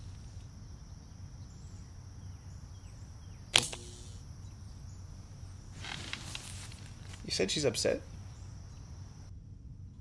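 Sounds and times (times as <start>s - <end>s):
sharp click: 3.5s - 4.2s.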